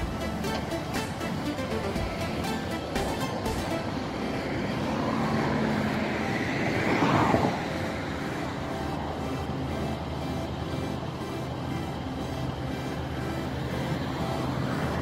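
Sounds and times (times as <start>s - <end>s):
background music: 0.0s - 15.0s
diesel train running slowly: 0.0s - 15.0s.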